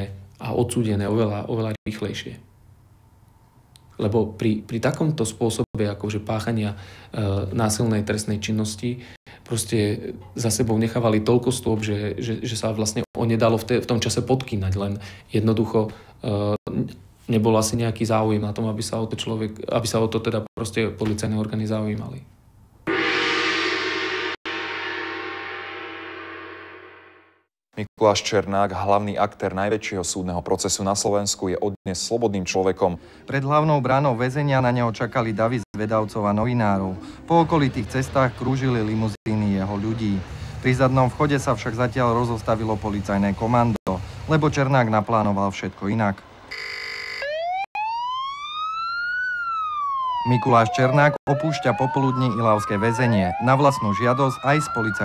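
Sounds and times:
police siren: 22.9s - 27.0s, 46.5s - 55.0s
gong-like ringing hit: 22.9s - 27.4s.

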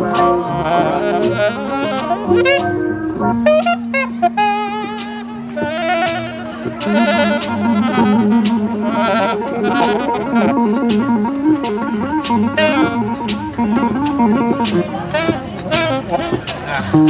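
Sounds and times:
electric bass guitar melody: 0.0s - 17.0s
saxophone phrases: 0.0s - 17.0s.

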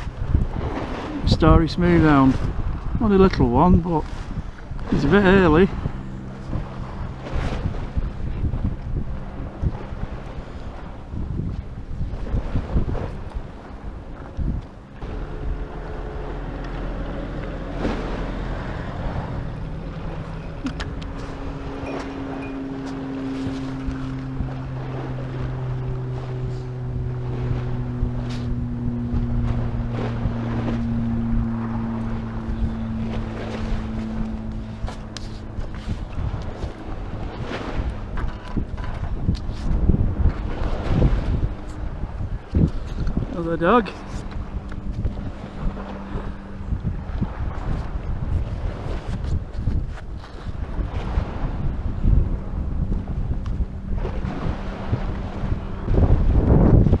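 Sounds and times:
low steady hum: 0.0s - 57.0s
wind buffeting microphone: 0.0s - 57.0s.

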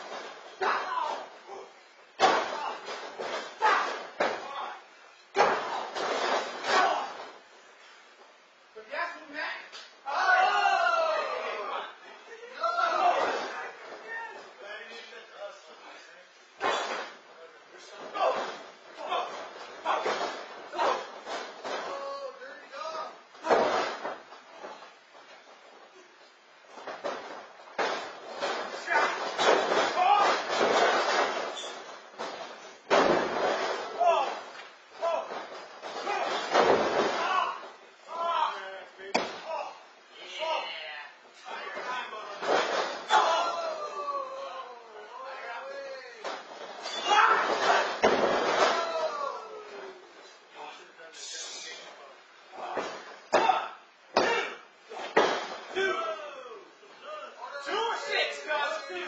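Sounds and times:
bodies thudding on ring canvas: 26.7s - 37.8s, 52.6s - 55.9s.

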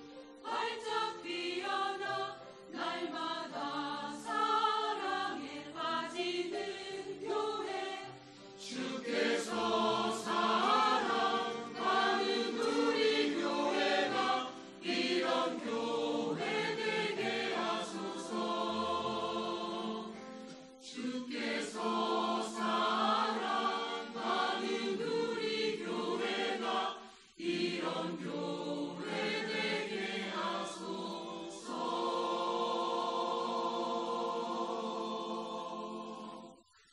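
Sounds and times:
mixed choir singing: 0.0s - 36.8s.

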